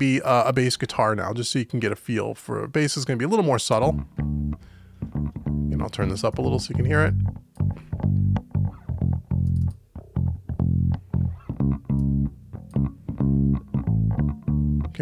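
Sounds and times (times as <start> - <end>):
plucked bass guitar notes: 3.8 - 15.0.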